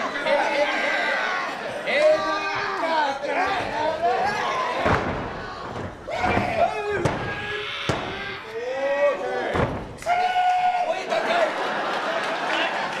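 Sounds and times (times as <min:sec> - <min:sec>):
people shouting: 0:00.5 - 0:11.1.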